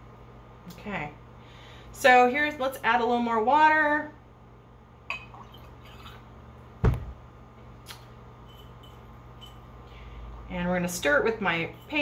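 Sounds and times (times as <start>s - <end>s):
glass jars clinking: 8.4s - 9.7s.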